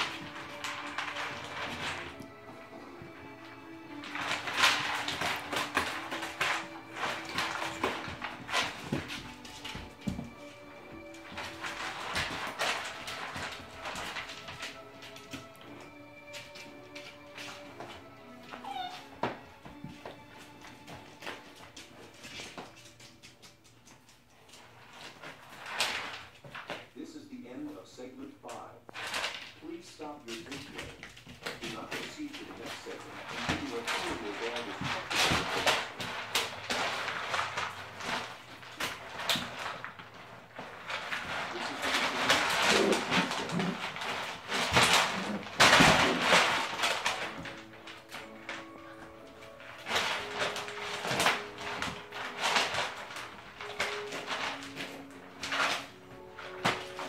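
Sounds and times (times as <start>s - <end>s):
background music: 0.0s - 57.0s
puppies rustling through litter: 0.0s - 57.0s
puppy whining: 18.4s - 20.1s.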